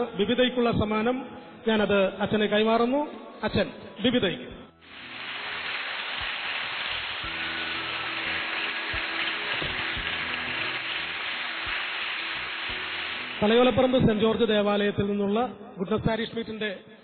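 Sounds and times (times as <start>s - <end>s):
audience applauding: 4.8s - 14.2s
person giving speech: 13.4s - 14.9s.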